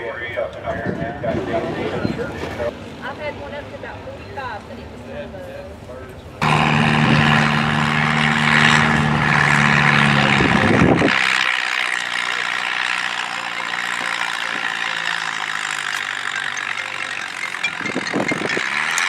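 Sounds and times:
tractor engine idling: 2.6s - 19.0s.

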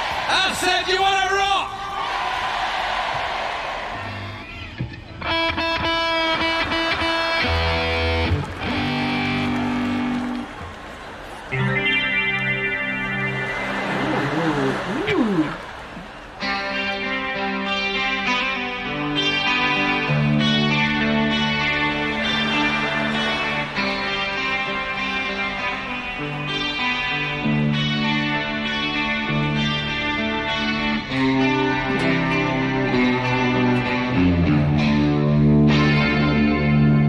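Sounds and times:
electric rock guitar riffs: 4.0s - 37.0s
audience laughing and cheering: 6.2s - 17.2s, 21.5s - 26.2s.

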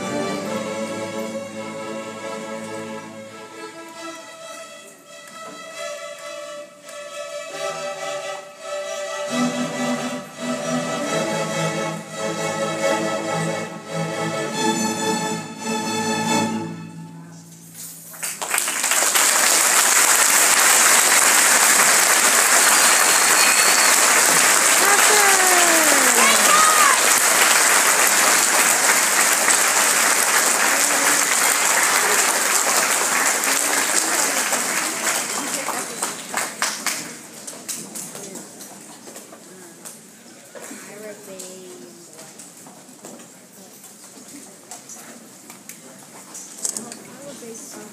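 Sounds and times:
string orchestra playing: 0.0s - 17.4s, 20.0s - 35.8s
audience applauding: 18.1s - 37.3s
audience cheering: 19.1s - 34.4s.

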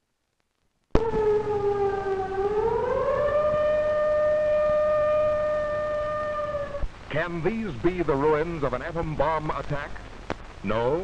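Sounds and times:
siren wailing: 1.0s - 6.9s.

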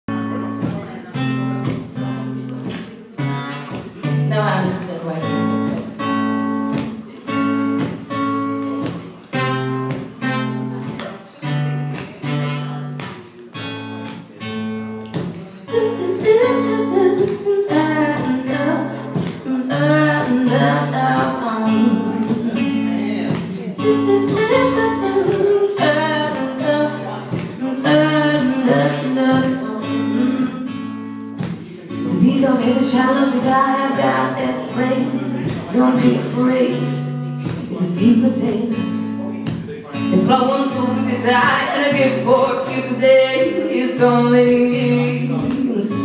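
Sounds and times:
acoustic guitar strumming chords: 0.1s - 46.0s.

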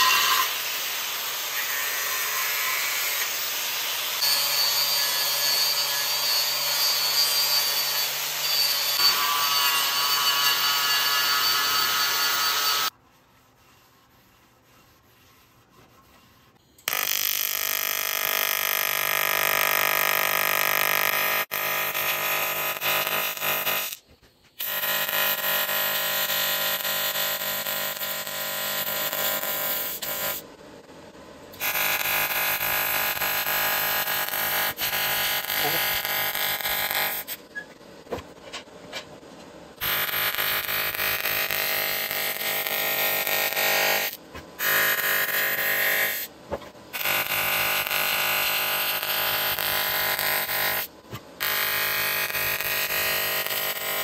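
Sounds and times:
welding arc buzzing: 0.0s - 12.9s, 16.8s - 30.4s, 31.5s - 37.4s, 39.8s - 54.0s.

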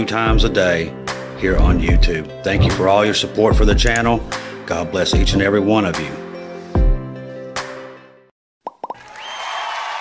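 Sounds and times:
background music: 0.0s - 8.3s
popping sound effects: 8.6s - 9.0s.

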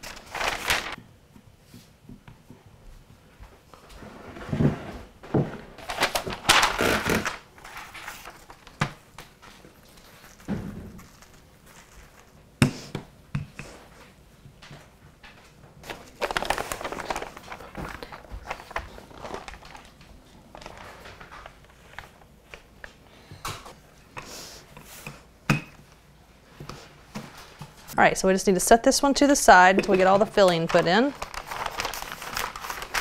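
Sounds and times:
paper rustling: 0.0s - 1.0s, 5.8s - 12.4s, 15.8s - 22.7s, 29.9s - 33.0s.

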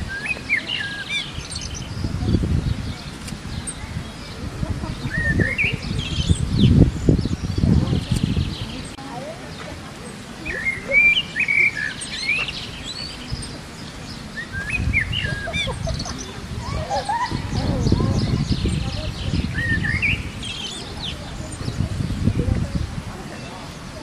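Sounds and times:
small birds chirping: 0.0s - 24.0s.

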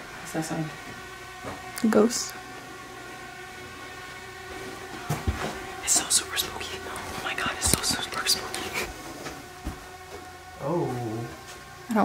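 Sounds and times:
droning hum of held tones: 0.0s - 12.0s.

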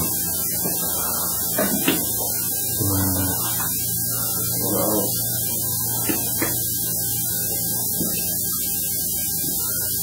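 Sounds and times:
electrical mains hum: 0.0s - 10.0s
murmured voice-like sounds: 2.8s - 3.4s.

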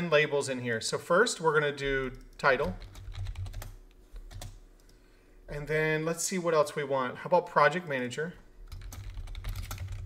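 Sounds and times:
computer keyboard typing: 2.0s - 4.9s, 8.7s - 10.0s.

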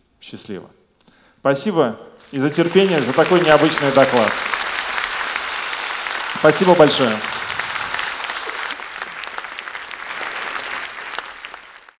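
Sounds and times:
audience applauding: 2.2s - 12.0s.

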